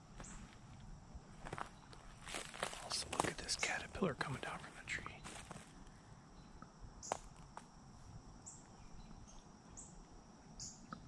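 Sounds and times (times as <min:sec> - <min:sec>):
footsteps on dry forest floor: 0:00.0 - 0:05.9.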